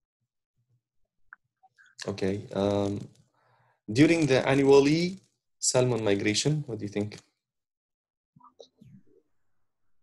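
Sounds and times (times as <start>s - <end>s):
man speaking: 2.0s - 3.2s.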